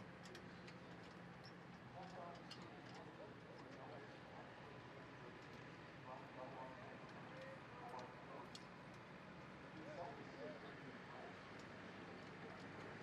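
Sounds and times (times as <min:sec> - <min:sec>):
faint distant talking: 0:02.0 - 0:08.6.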